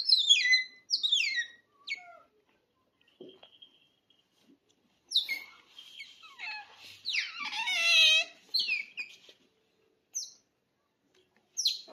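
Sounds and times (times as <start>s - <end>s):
otter squeaking and chirping: 0.0s - 2.3s, 5.1s - 9.4s, 11.6s - 11.9s.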